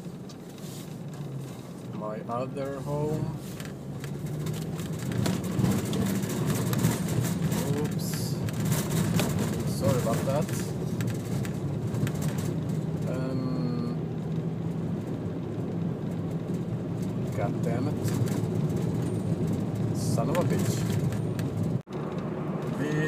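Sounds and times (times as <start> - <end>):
car engine and road noise: 0.0 - 23.0.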